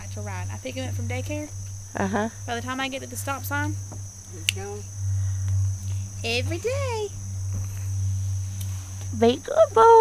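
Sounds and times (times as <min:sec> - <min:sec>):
crickets chirping: 0:00.0 - 0:10.0
low steady hum: 0:00.0 - 0:10.0.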